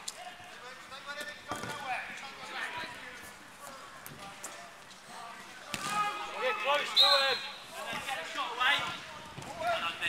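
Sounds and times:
players' voices calling: 5.6s - 10.0s.

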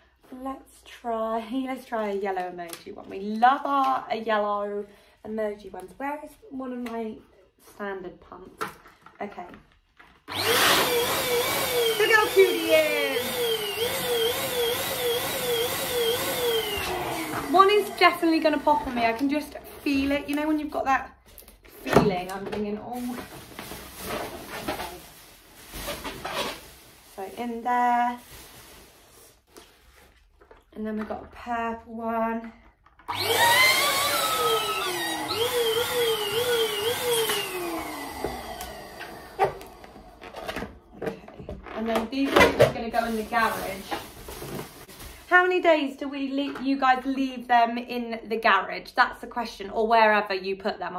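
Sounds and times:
electric balloon pump motor whine: 10.3s - 18.9s, 33.1s - 40.7s.

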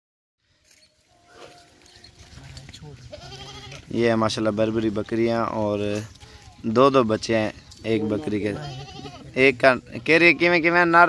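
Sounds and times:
goats bleating: 1.3s - 4.2s, 7.9s - 9.6s.

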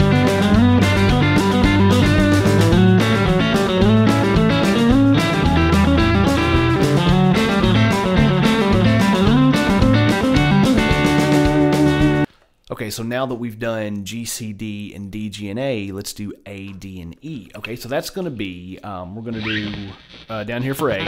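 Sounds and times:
backing track with bass line: 0.0s - 12.3s
electric guitar country licks: 0.0s - 12.3s, 18.4s - 21.0s.

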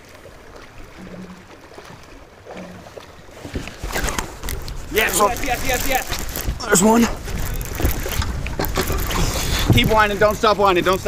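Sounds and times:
wind buffeting microphone: 3.4s - 11.0s.

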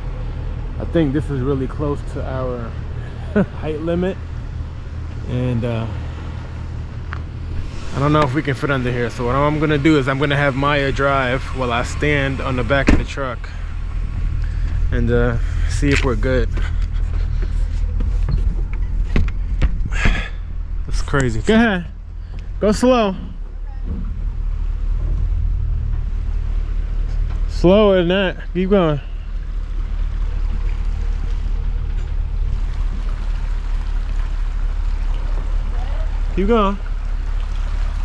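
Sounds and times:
road and air noise: 0.0s - 38.0s
truck engine idling: 0.0s - 38.0s
knocks and rustles: 16.5s - 20.2s.

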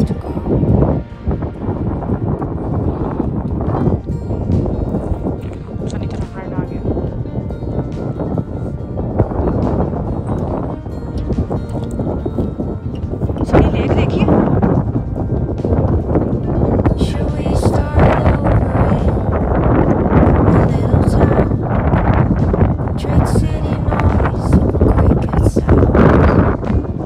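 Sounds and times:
background music: 0.0s - 27.0s
wind buffeting microphone: 0.0s - 27.0s.

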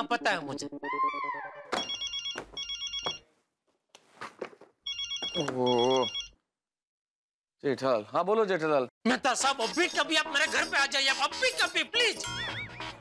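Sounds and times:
telephone ringing: 1.8s - 3.3s, 4.8s - 6.4s.

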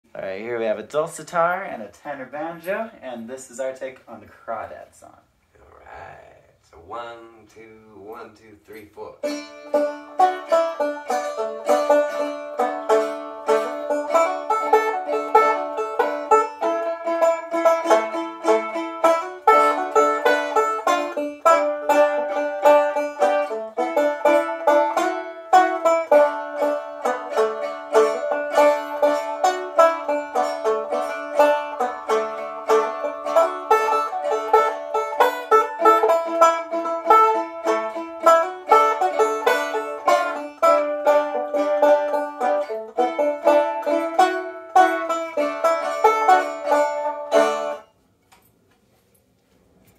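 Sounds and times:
banjo plucking: 8.0s - 47.9s.

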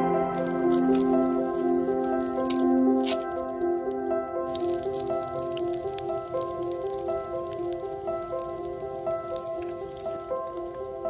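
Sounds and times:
faint crackling hiss: 0.0s - 11.0s
soft instrumental music: 0.0s - 11.0s
water pouring into a cup: 0.2s - 11.0s.

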